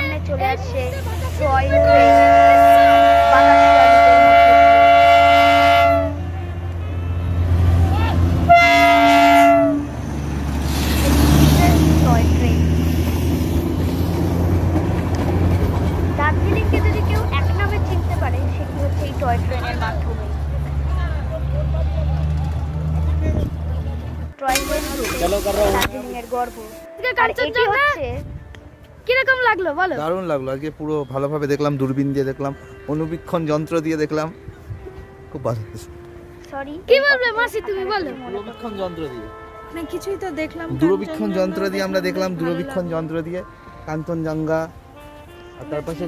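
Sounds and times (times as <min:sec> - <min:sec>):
crowd voices: 0:00.0 - 0:12.7, 0:13.6 - 0:29.0
locomotive running: 0:00.0 - 0:26.9
train horn blasts: 0:01.1 - 0:12.4, 0:37.7 - 0:46.0.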